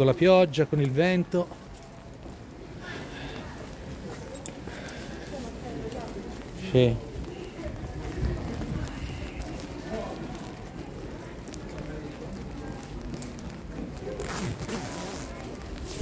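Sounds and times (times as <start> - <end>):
faint footsteps on stone steps: 0.0 - 16.0
wind buffeting microphone: 7.6 - 9.6.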